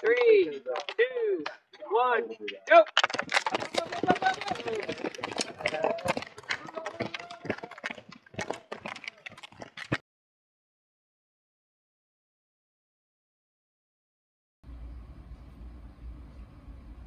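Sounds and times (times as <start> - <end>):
voices: 0.0 - 9.4.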